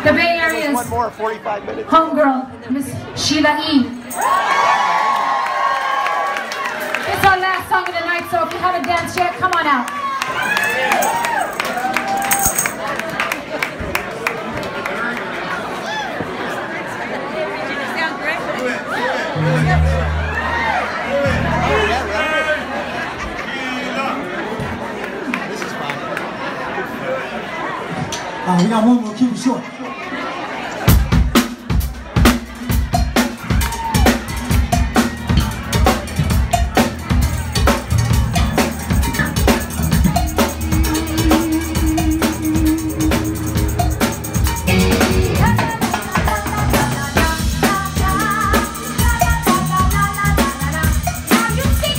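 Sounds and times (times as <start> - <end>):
drum kit and hand percussion: 0.0 - 1.2, 10.4 - 13.0, 30.9 - 51.9
crowd chatter: 0.0 - 51.9
held melodic note: 19.4 - 22.3
bass line: 19.4 - 23.0, 32.2 - 51.9.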